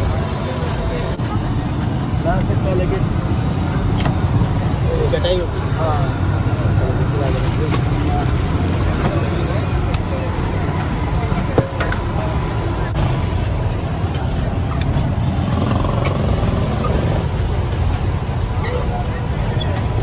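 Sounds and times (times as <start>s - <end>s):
low rumble of street traffic: 0.0s - 20.0s
voices in background: 0.0s - 20.0s.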